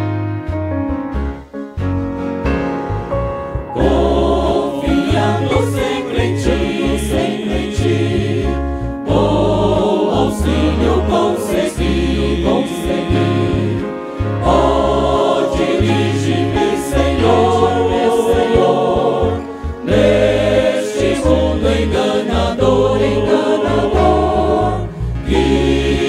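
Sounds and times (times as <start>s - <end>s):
deep bass notes: 0.0s - 26.0s
keyboard: 0.0s - 26.0s
choir singing: 3.8s - 26.0s
men singing a hymn in harmony: 3.8s - 26.0s.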